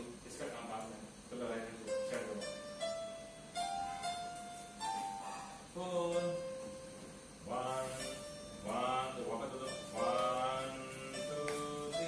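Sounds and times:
electronic keyboard held notes: 1.6s - 12.0s.

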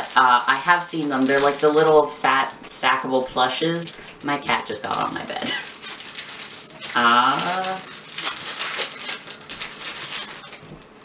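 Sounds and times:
plastic package crinkling: 0.0s - 11.0s.

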